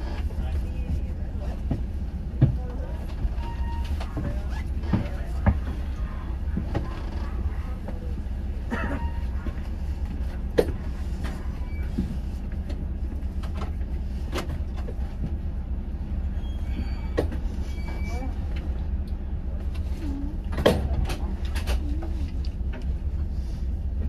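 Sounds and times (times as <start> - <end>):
diesel engine idling: 0.0 - 24.0.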